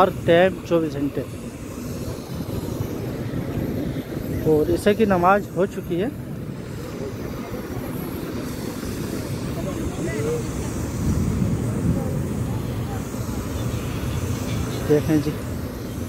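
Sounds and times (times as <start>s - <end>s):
steady low rumble: 0.0s - 16.0s
voices of people walking: 1.3s - 4.5s.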